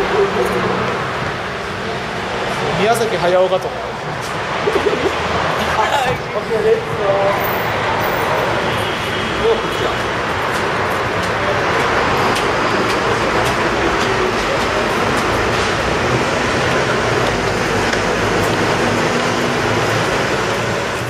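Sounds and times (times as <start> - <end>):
traffic roar echoing: 0.0 - 21.0.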